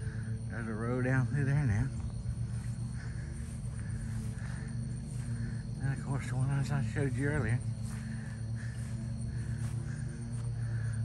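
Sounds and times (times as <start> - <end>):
insects chirring: 0.0 - 11.0
low steady rumble: 0.0 - 11.0.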